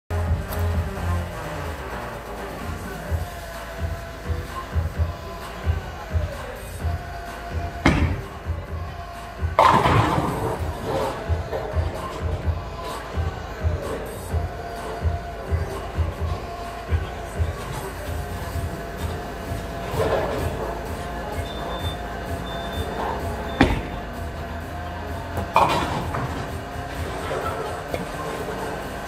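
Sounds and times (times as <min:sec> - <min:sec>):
background music with beat: 0:00.1 - 0:29.0
chatter: 0:00.1 - 0:29.0
bowling ball rumbling: 0:02.7 - 0:29.0
bowling pins crashing: 0:02.8 - 0:29.0.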